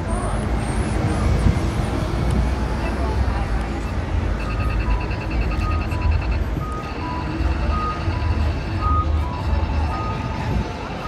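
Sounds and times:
traffic engines rumble: 0.0 - 11.0
rapid high electronic beeps: 4.4 - 10.4.

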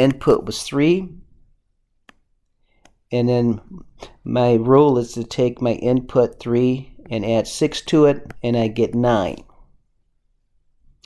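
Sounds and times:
person speaking: 0.0 - 1.3, 2.9 - 9.7
computer mouse clicks: 2.0 - 3.0.

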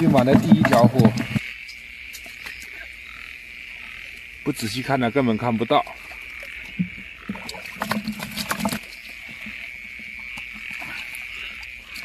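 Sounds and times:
night insects chirring: 0.0 - 12.0.

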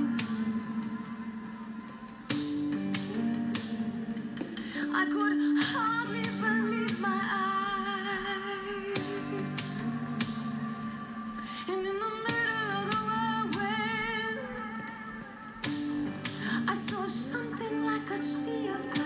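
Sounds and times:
guitar accompaniment: 0.0 - 19.0.

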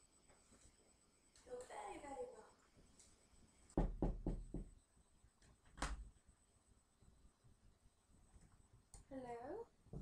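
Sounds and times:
knocking on a door: 3.8 - 4.8.

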